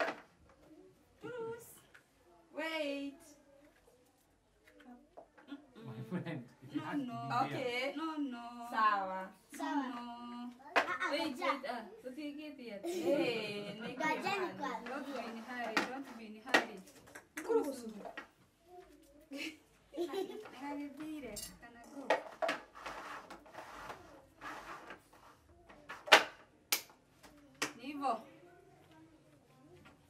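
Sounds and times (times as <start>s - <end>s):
cups scraping and tapping on table: 22.0s - 26.1s
hand clap: 26.2s - 26.9s.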